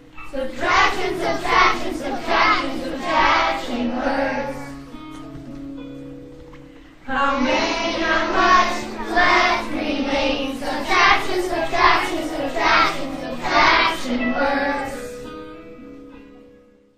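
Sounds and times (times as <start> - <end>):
children singing together: 0.0 - 5.0, 7.1 - 15.3.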